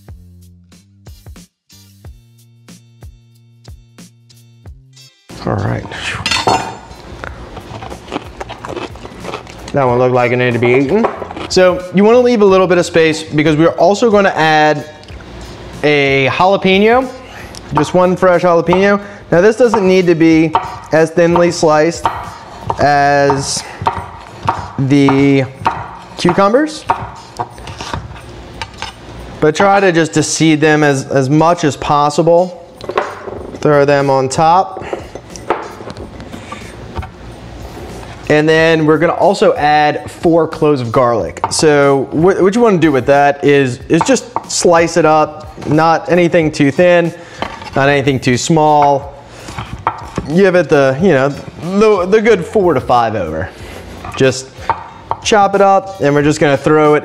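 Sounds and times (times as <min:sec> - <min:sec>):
cucumber crunching when bitten: 0:07.2 - 0:09.8.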